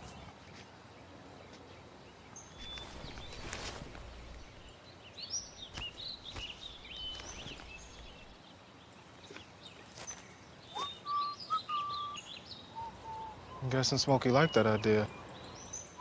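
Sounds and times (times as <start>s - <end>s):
faint outdoor hiss: 0.0s - 16.0s
small birds chirping: 0.0s - 16.0s
whistled bird notes: 10.0s - 16.0s.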